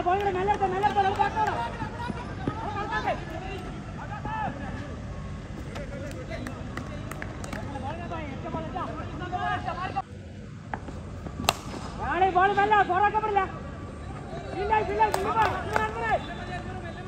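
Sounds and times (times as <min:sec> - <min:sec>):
people shouting and chattering: 0:00.0 - 0:10.1, 0:11.2 - 0:17.0
loud sharp crack: 0:11.4 - 0:12.0.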